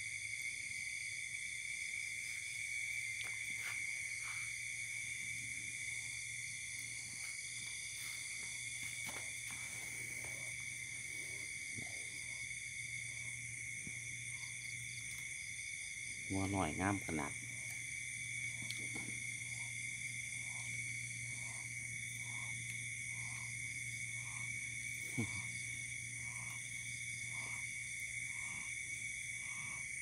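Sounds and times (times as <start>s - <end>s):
crickets trilling: 0.0s - 30.0s.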